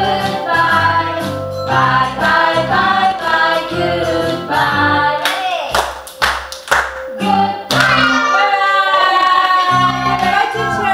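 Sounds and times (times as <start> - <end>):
children's song with singing: 0.0 - 5.7, 7.1 - 10.9
sharp claps: 5.2 - 7.1.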